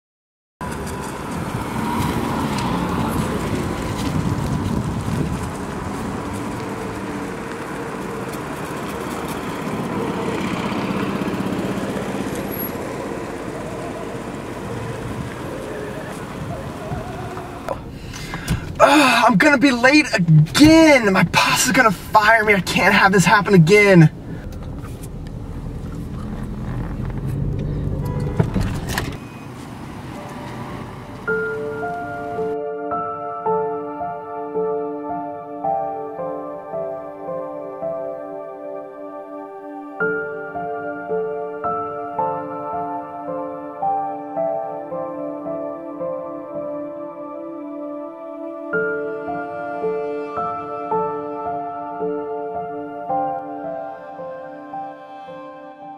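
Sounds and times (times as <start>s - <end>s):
cars driving past: 0.6s - 34.2s
slow sustained music notes: 31.2s - 55.9s.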